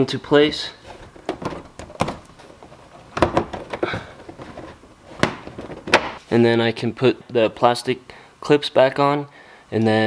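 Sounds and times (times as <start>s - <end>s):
plastic rubbing: 0.8s - 6.2s.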